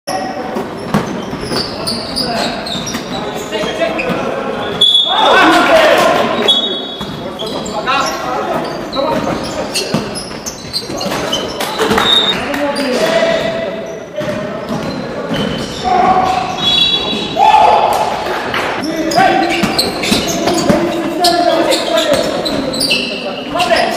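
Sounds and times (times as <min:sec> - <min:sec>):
sneakers squeaking on court: 0:00.2 - 0:05.6, 0:06.2 - 0:17.4, 0:18.0 - 0:23.9
players shouting: 0:05.0 - 0:06.5, 0:15.8 - 0:22.2.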